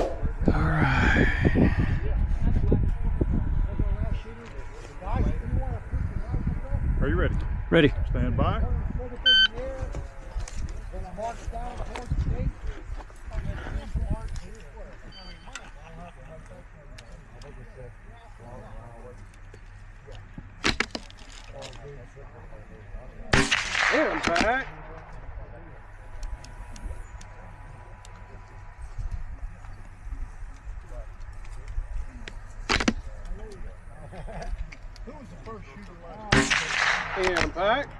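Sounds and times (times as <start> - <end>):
faint voices: 0.0 - 37.9
rifle shot with echo: 23.3 - 24.8, 36.3 - 37.6.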